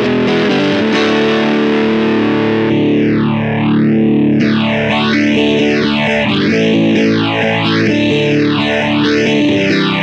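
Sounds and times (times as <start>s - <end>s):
distorted electric guitar chord: 0.0s - 10.0s.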